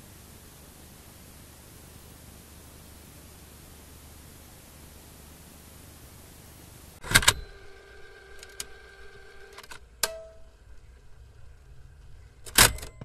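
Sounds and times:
sharp hit with ringing tones: 0:10.0 - 0:10.8.

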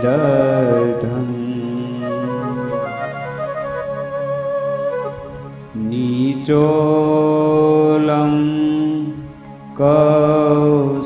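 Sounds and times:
man chanting in long notes: 0:00.0 - 0:03.4.

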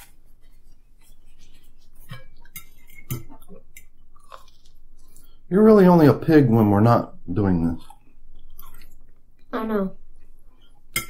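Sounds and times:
people chewing: 0:00.0 - 0:06.1, 0:07.2 - 0:09.5.

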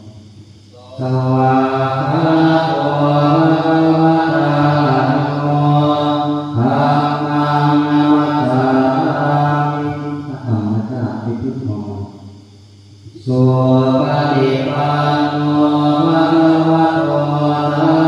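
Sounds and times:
monks chanting in unison: 0:00.0 - 0:12.1, 0:13.0 - 0:18.0.

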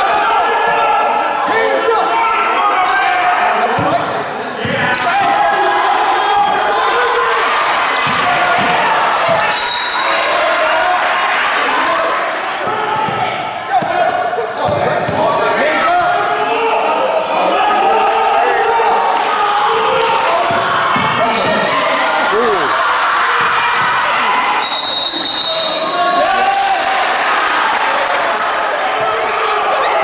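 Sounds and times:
people shouting and talking: 0:00.0 - 0:30.0.

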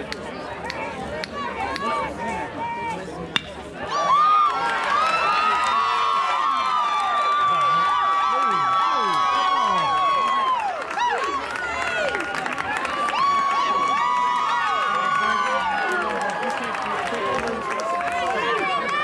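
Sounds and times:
crowd cheering and yelling: 0:00.6 - 0:19.0.

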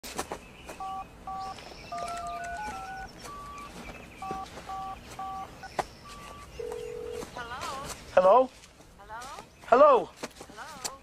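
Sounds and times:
phone keypad touch-tone beeps: 0:00.8 - 0:07.2
sharp clicks: 0:01.5 - 0:04.4.

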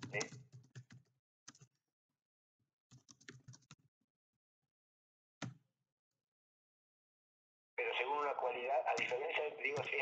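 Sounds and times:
keyboard typing: 0:00.0 - 0:01.8, 0:02.9 - 0:03.8, 0:08.9 - 0:10.0.

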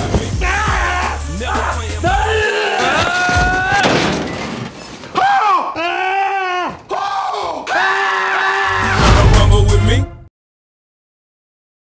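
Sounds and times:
man yelling high-pitched: 0:00.3 - 0:03.8, 0:05.2 - 0:09.0.

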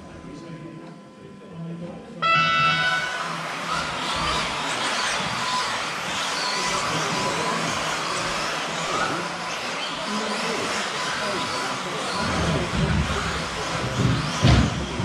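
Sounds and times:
electronic race-start tone: 0:02.2 - 0:09.4
rc buggy motors whining: 0:02.2 - 0:15.0.

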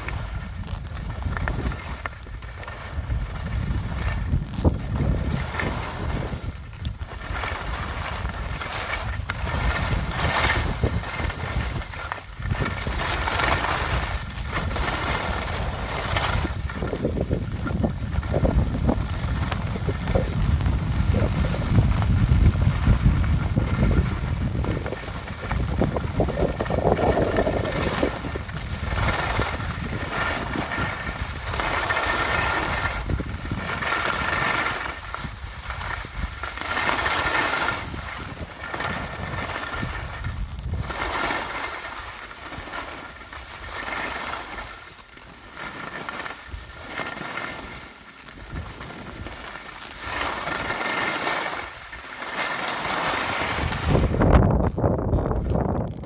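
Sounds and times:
wind buffeting microphone: 0:00.0 - 0:44.9, 0:46.3 - 0:52.0, 0:52.8 - 0:56.0
skis hissing on snow: 0:00.0 - 0:54.4.

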